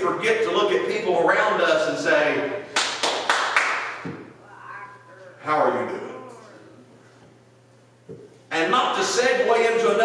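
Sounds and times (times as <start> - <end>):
sharp hand claps: 2.7 - 4.2.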